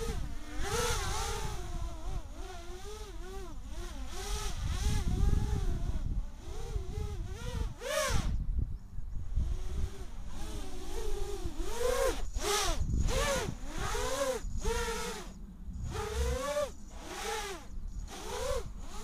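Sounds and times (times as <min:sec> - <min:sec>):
quadcopter motors whining: 0:00.0 - 0:19.0.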